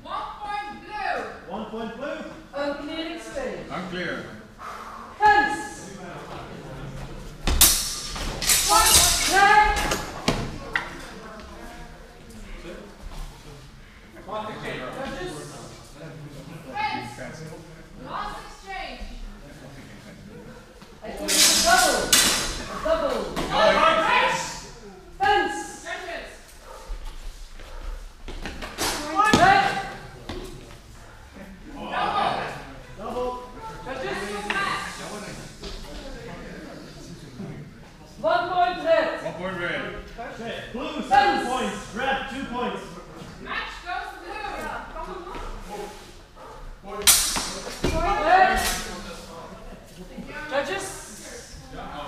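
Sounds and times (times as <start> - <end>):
murmur of voices: 0.0 - 52.0
swords clattering: 7.6 - 10.1, 21.2 - 22.6, 47.1 - 47.9.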